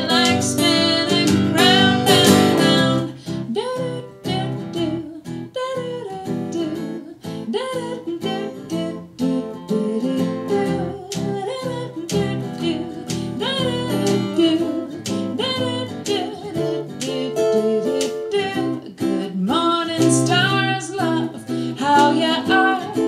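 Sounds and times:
plucked guitar: 0.0 - 23.0
woman singing: 0.0 - 23.0.

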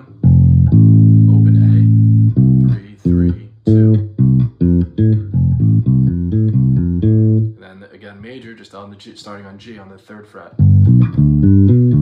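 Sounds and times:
electric bass guitar plucked notes: 0.0 - 7.6, 10.6 - 12.0.

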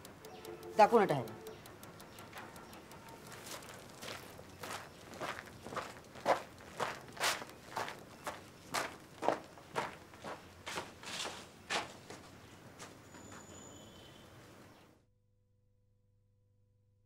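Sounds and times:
footsteps on packed dirt: 3.1 - 13.4.

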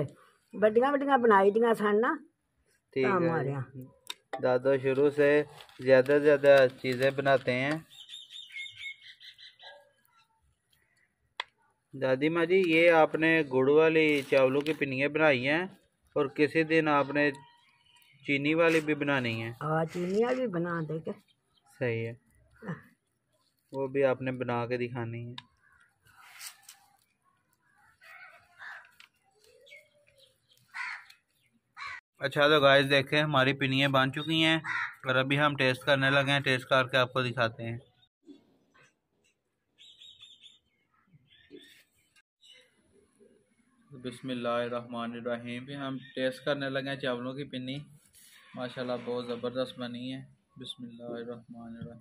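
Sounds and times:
bird chirping: 6.7 - 11.3, 16.1 - 23.6, 25.5 - 32.0, 39.7 - 44.2
crow cawing: 28.0 - 29.1, 30.7 - 31.2, 31.8 - 32.0, 34.6 - 35.1.

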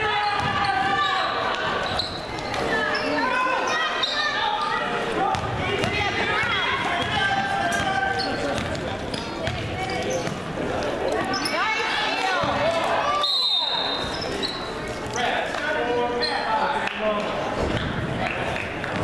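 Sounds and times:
basketball bouncing on hardwood: 8.6 - 10.4.

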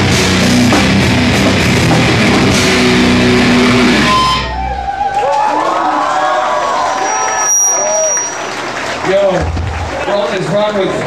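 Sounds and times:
live heavy rock band: 0.0 - 4.7
low bass rumble: 0.0 - 5.0
low amplifier hum: 0.0 - 5.2
crowd noise: 0.0 - 11.0.

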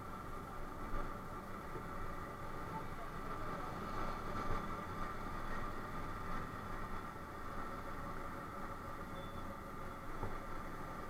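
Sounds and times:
faint steady whine: 0.0 - 11.0
wind and road noise: 0.0 - 11.0.

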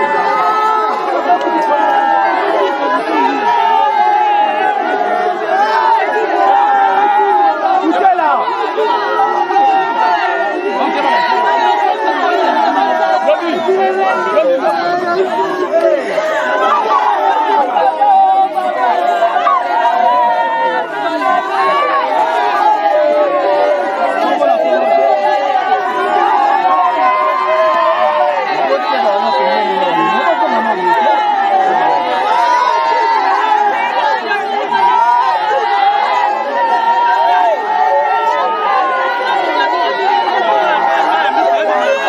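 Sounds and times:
crowd crying and wailing: 0.0 - 42.0
people talking: 0.0 - 42.0.

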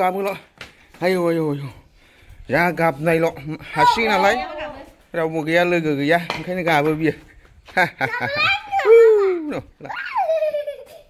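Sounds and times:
child squealing: 8.2 - 10.7.

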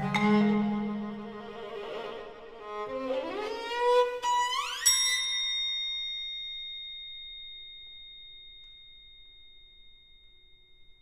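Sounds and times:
violin note: 0.0 - 4.8
bell-like metal percussion ringing: 4.4 - 11.0.

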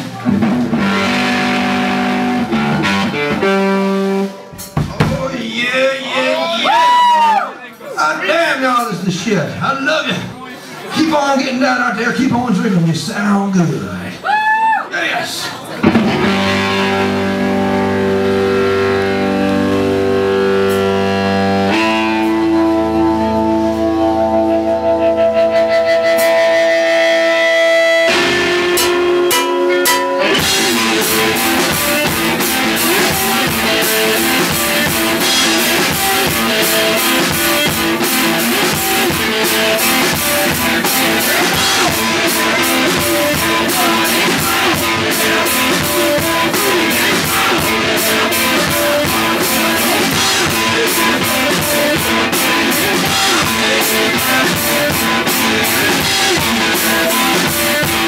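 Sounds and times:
electric guitar sustained notes: 0.0 - 4.5, 15.8 - 58.0
drum kit playing: 0.0 - 7.2, 15.7 - 58.0.

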